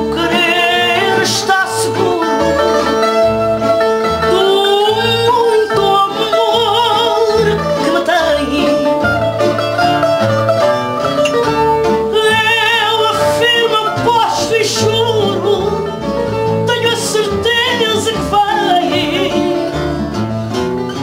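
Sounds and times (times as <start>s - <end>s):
woman singing with wide vibrato: 0.0s - 2.9s, 4.2s - 9.2s, 12.1s - 16.0s, 16.6s - 19.9s
acoustic guitar bass pulse: 0.0s - 21.0s
bright plucked guitar: 0.0s - 21.0s.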